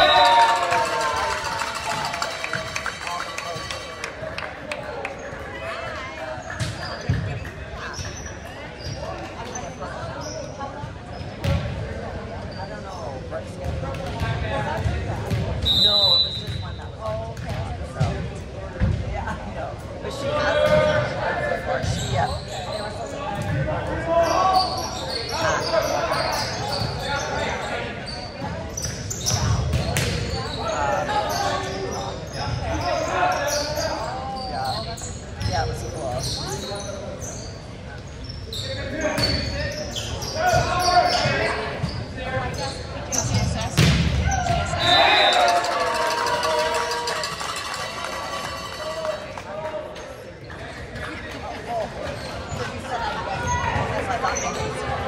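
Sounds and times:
voices of players and spectators: 0.0 - 55.0
high whistle: 15.6 - 16.5.

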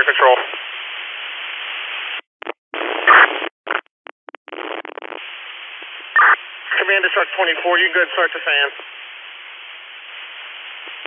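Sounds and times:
radio hiss and static: 0.0 - 11.0
bursts of radio noise: 2.4 - 3.9, 6.1 - 8.9.

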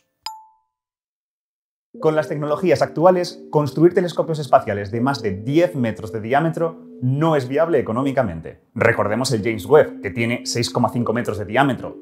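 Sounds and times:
bell-like ding: 0.3 - 0.7.

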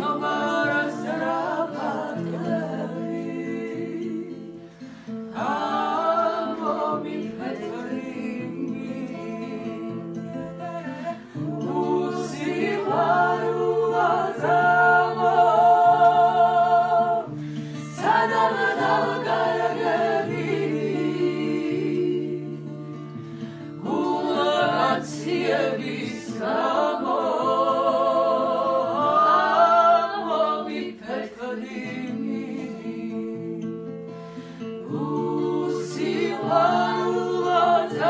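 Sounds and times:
strummed acoustic guitar: 0.0 - 38.0
women singing together: 0.0 - 38.0.

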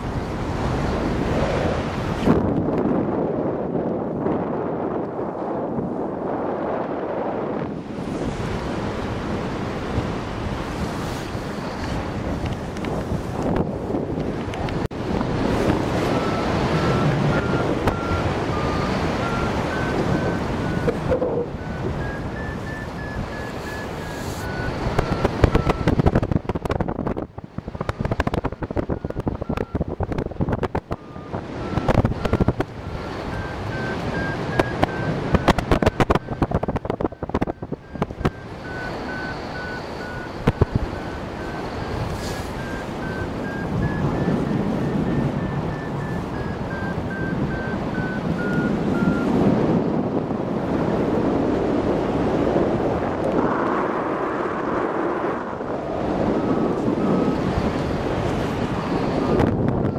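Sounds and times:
wind buffeting microphone: 0.0 - 59.9
variometer beeping: 11.6 - 49.7, 55.5 - 59.9.

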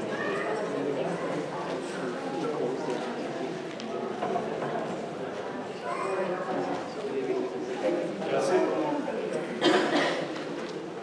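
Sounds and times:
crowd babble in a large hall: 0.0 - 11.0.

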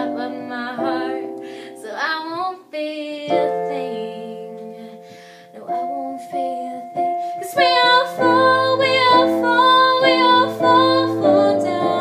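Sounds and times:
piano chords and notes: 0.0 - 12.0
woman singing: 0.0 - 12.0.

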